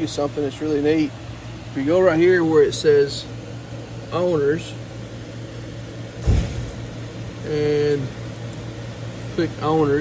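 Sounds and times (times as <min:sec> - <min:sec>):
steady low hum: 0:00.0 - 0:10.0
loud thump: 0:06.2 - 0:06.9.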